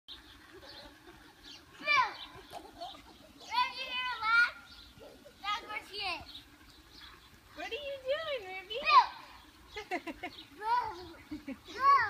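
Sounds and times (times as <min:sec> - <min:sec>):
children shrieking and squealing: 0:00.6 - 0:06.3.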